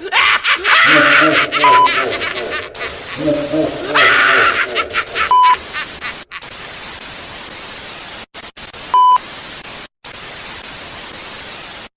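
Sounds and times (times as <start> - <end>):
television static hiss: 0.8 - 11.9
test-card beep: 1.7 - 1.9.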